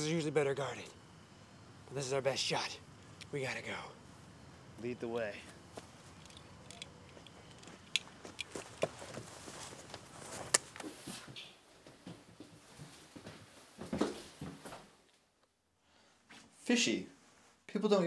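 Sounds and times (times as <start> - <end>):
faint footsteps: 5.3 - 14.9
clothing rustle: 8.5 - 14.9.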